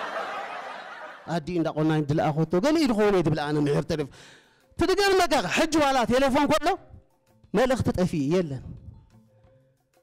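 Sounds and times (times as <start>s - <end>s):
audience laughter: 0.0s - 1.3s.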